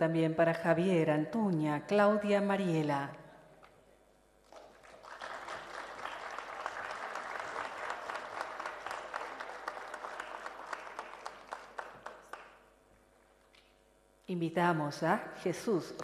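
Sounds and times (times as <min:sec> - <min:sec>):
audience applauding: 0:04.5 - 0:12.6.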